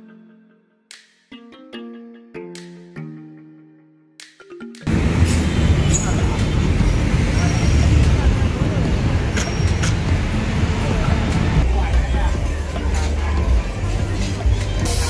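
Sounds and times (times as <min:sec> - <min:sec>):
traffic rumble: 0:04.9 - 0:15.0
people's voices: 0:05.1 - 0:15.0.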